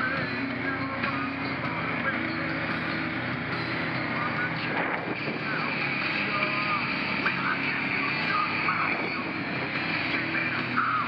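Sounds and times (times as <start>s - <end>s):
faint music: 0.0s - 11.0s
quad engine running: 0.0s - 11.0s.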